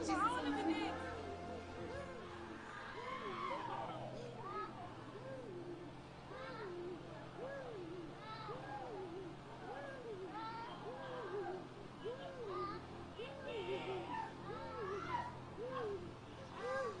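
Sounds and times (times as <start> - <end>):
higher cries: 1.8 - 5.6.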